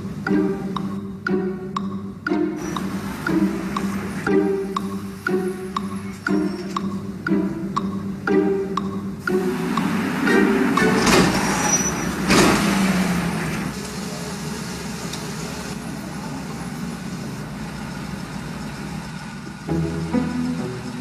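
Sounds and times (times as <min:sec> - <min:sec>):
string music: 0:00.0 - 0:13.8, 0:19.4 - 0:21.0
low traffic noise: 0:00.0 - 0:21.0
vehicle passing: 0:02.4 - 0:14.8, 0:15.9 - 0:21.0.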